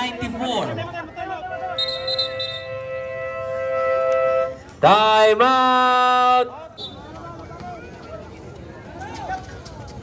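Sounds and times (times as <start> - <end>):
steady horn tone: 1.5 - 4.8
horn blast swooping up: 1.8 - 4.6.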